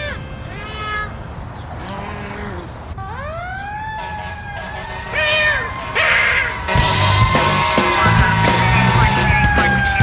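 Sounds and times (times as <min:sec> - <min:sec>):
fire engine siren wailing: 0:03.0 - 0:10.0
loud rock music: 0:05.8 - 0:10.0.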